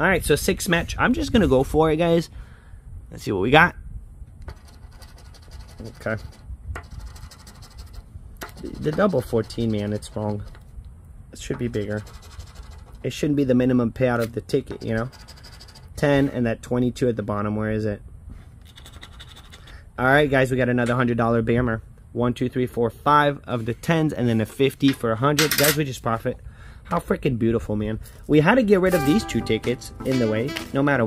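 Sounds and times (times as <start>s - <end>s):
poker chip scratching lottery ticket: 4.4s - 10.7s, 11.4s - 13.3s, 14.1s - 16.4s, 18.6s - 19.8s, 29.0s - 31.0s.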